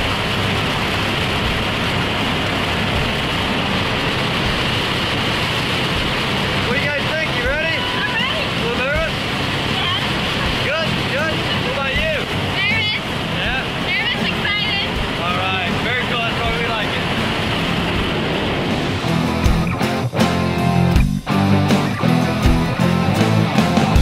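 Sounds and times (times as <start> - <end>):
rock music with guitar: 0.0 - 24.0
small plane engine and propeller drone: 0.0 - 24.0
people calling and laughing: 6.7 - 17.2.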